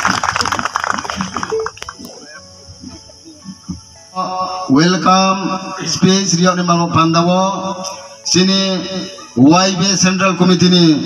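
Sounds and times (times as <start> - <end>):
man announcing over loudspeaker: 8.3 - 11.0.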